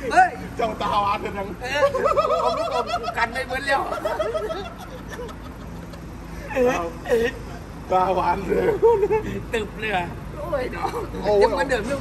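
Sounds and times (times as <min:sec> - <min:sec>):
road traffic hum: 0:00.0 - 0:12.0.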